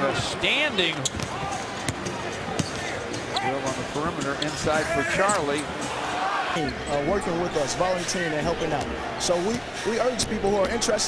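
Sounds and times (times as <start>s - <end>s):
background murmur of crowd: 0.0s - 11.0s.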